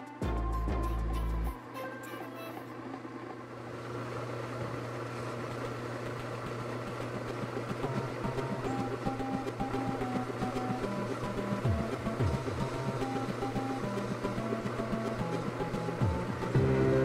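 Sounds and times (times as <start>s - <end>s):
background music: 0.0s - 2.6s, 7.8s - 17.0s
low electric motor hum: 0.0s - 17.0s.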